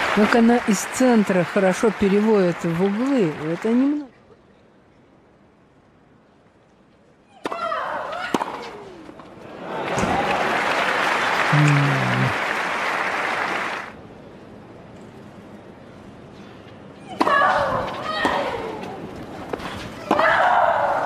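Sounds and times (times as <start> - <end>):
crowd applause: 0.0 - 4.0, 9.5 - 14.0.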